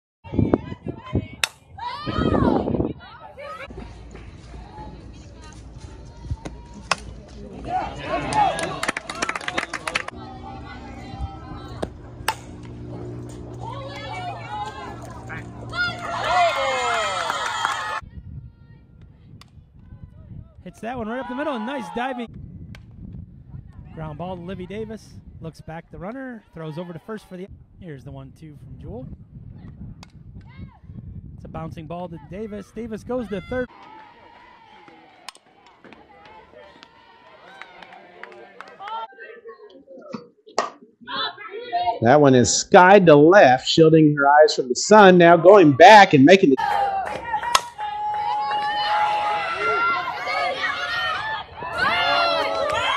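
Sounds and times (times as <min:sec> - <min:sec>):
bat cracking against ball: 0:11.8 - 0:14.1, 0:47.1 - 0:47.8
spectators calling out: 0:21.0 - 0:22.3.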